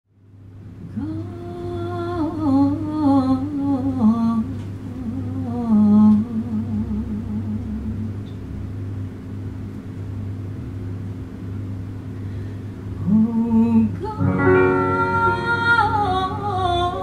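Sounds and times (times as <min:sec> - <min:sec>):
woman humming a low melody: 0:00.8 - 0:08.4, 0:13.0 - 0:17.0.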